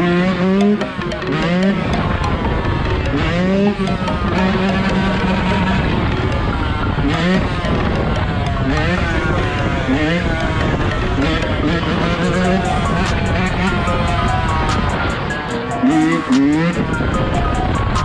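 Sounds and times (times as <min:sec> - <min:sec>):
dirt bike engine revving: 0:00.0 - 0:17.1
background music: 0:00.0 - 0:18.0.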